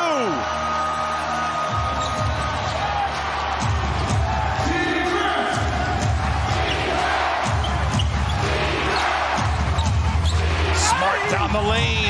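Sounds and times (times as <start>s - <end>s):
arena music: 0.0s - 12.0s
crowd noise: 0.0s - 12.0s.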